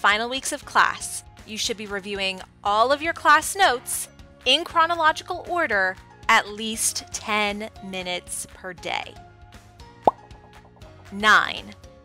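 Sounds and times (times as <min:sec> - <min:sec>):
soft background music: 0:00.0 - 0:12.0
rising plop sound effect: 0:10.0 - 0:10.3.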